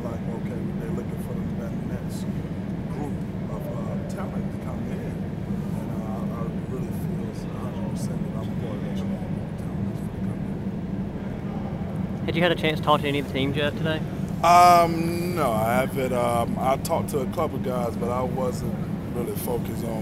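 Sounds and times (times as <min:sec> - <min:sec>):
indistinct background voices: 0:00.0 - 0:20.0
steady low hum: 0:00.0 - 0:20.0.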